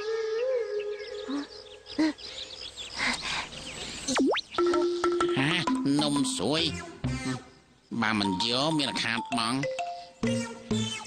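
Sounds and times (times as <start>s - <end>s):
birds chirping: 0.4s - 11.0s
cartoon blips: 4.1s - 6.8s.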